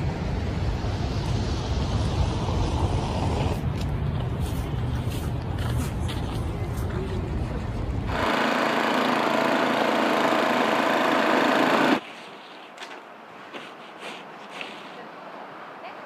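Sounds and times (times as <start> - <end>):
snowblower engine running: 8.1 - 12.0
snow shovel scraping: 13.5 - 15.0.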